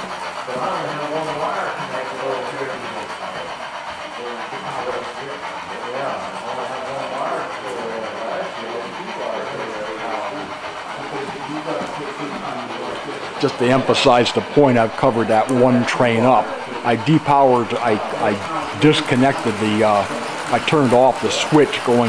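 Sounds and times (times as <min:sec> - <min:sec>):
model train motors whirring: 0:00.0 - 0:22.0
wheels rumbling on track: 0:00.0 - 0:22.0.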